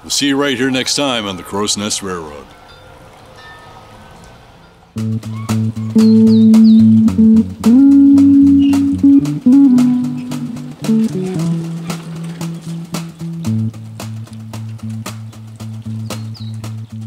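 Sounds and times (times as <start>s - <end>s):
music with a steady beat: 5.0s - 17.0s.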